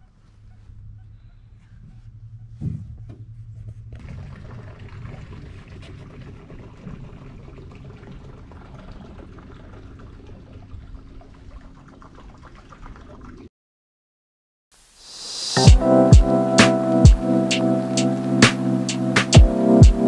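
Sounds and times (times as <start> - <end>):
water splashing against boat hull: 4.0 - 13.5.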